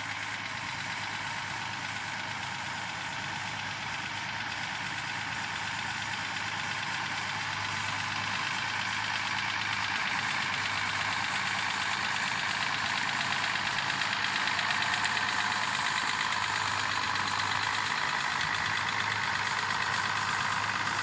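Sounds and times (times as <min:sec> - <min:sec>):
tractor engine running: 0:00.0 - 0:21.0.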